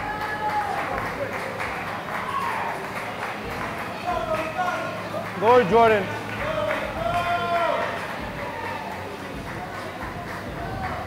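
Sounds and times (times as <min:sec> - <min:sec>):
exercise bike fan whooshing: 0:00.0 - 0:11.0
voices shouting: 0:02.0 - 0:11.0.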